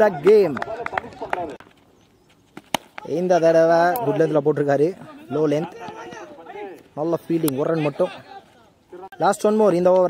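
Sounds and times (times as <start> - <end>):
cricket bat striking ball: 2.6 - 3.1.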